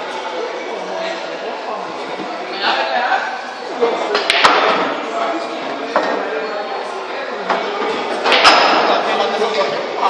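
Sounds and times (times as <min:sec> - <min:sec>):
pool balls clicking: 0:04.2 - 0:04.7.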